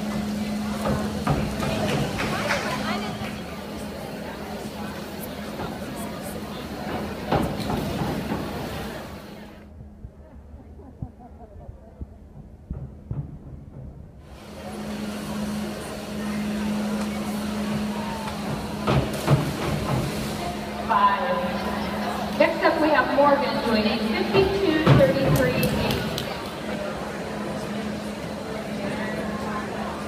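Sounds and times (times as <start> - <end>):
echoing chatter of spectators: 0.0 - 13.1, 14.3 - 30.0
steady low hum: 0.0 - 30.0.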